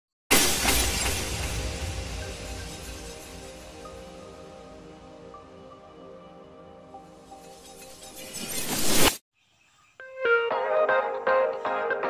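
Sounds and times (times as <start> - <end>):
glass shattering crash: 0.3 - 4.2
music: 1.6 - 8.0, 10.0 - 12.0.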